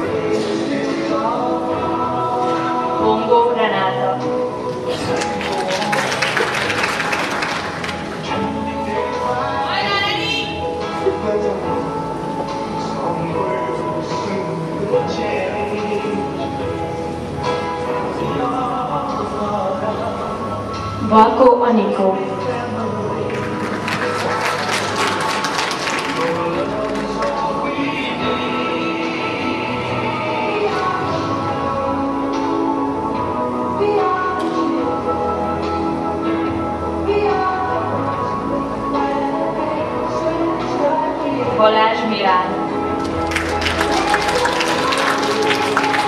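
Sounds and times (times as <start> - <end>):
background music: 0.0 - 46.0
audience applauding: 4.7 - 8.4, 23.3 - 27.7, 43.0 - 46.0.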